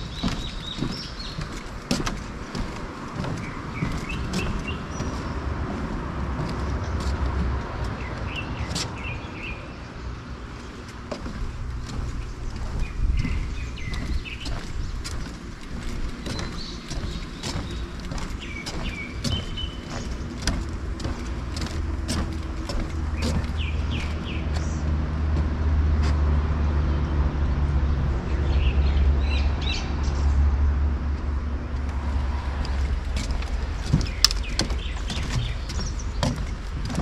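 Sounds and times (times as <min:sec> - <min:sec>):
small birds chirping: 0:00.0 - 0:25.0, 0:31.9 - 0:37.0
footsteps on wooden boardwalk: 0:00.0 - 0:26.3, 0:31.2 - 0:37.0.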